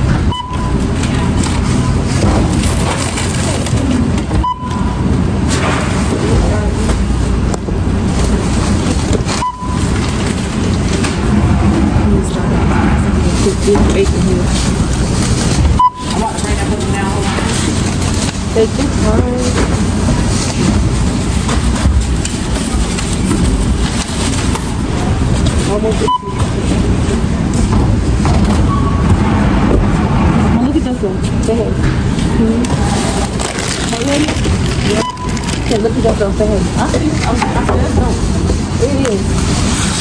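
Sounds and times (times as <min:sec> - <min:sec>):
store bustle: 0:00.0 - 0:40.0
short checkout beeps: 0:00.3 - 0:00.9, 0:04.4 - 0:05.0, 0:09.4 - 0:10.0, 0:15.8 - 0:16.3, 0:26.0 - 0:26.6, 0:34.8 - 0:35.5
background chatter: 0:10.5 - 0:28.2, 0:30.4 - 0:39.7.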